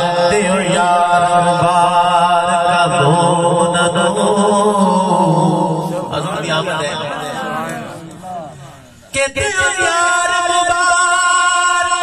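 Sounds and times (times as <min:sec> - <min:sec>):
man chanting through loudspeaker: 0:00.0 - 0:12.0.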